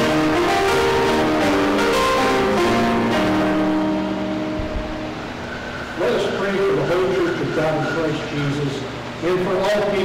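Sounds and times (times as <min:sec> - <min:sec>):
church organ chord: 0:00.0 - 0:08.3.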